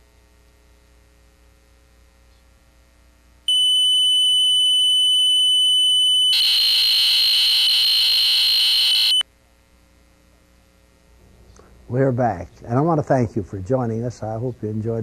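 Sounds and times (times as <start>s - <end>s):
faint steady hum: 0.0s - 15.0s
harsh buzzing tone: 3.5s - 9.2s
high-pitched electronic tone: 3.5s - 9.2s.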